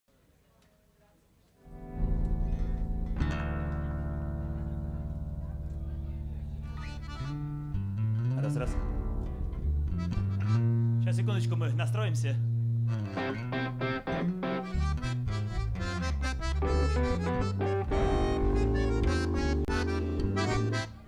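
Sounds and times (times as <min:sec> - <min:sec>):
bass instrument low held note: 0:16.0 - 0:21.0.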